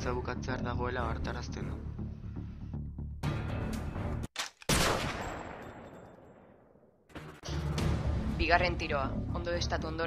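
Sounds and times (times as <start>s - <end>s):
background music: 0.0s - 4.3s, 7.1s - 10.0s
loud gunshot with echo: 4.7s - 5.9s.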